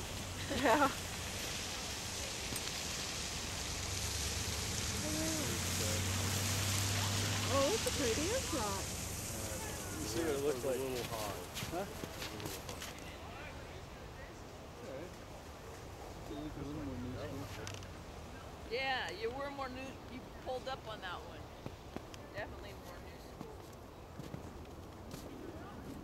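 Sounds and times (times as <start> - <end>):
low outdoor rumble: 0.0 - 26.0
faint voices: 4.8 - 23.9.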